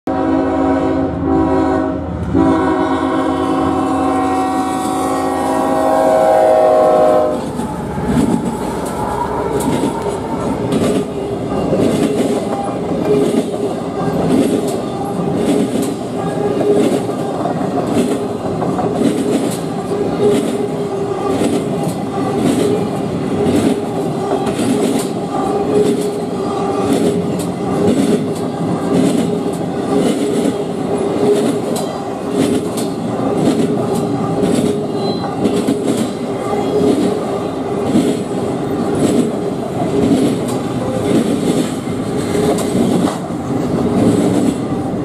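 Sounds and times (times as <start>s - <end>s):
locomotive air horn blasts: 0.1s - 7.5s
train rail rumble: 0.1s - 45.0s
wheel clicks on rail: 38.9s - 44.8s.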